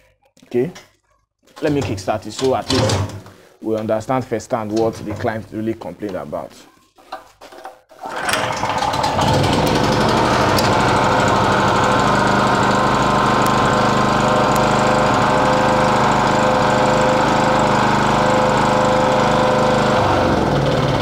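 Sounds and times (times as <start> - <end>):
generator engine running: 8.0 - 21.0.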